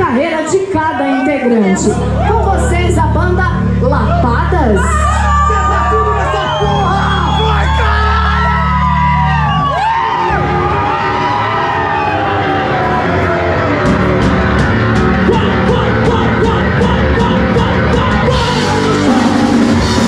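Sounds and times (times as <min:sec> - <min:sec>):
audience whooping and yelling: 0:03.9 - 0:20.0
drum beat with cymbals: 0:13.9 - 0:20.0.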